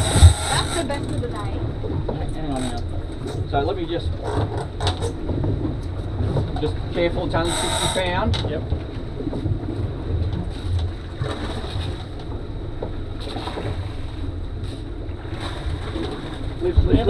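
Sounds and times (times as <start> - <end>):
outboard motors rumbling: 0.0 - 17.0
water noise: 0.0 - 17.0
wind: 0.0 - 17.0.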